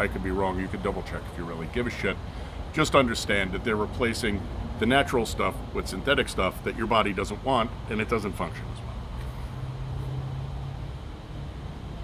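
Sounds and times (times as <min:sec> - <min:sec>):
low engine-like hum: 0:00.0 - 0:12.0.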